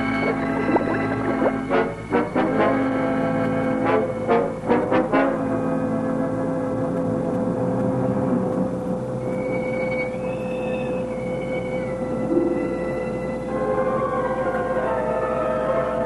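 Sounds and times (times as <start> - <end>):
high held notes: 0.0 - 5.8, 9.2 - 15.4
low drone: 0.0 - 16.0.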